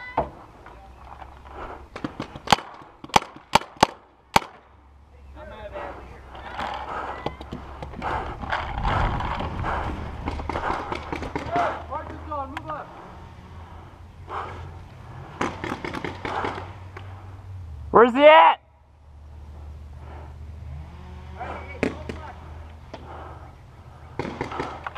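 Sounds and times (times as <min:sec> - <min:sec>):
distant shouting voices: 0:00.0 - 0:02.4, 0:04.6 - 0:24.9
paintball markers firing: 0:01.9 - 0:04.6, 0:10.2 - 0:12.6, 0:15.4 - 0:16.7, 0:24.2 - 0:24.9.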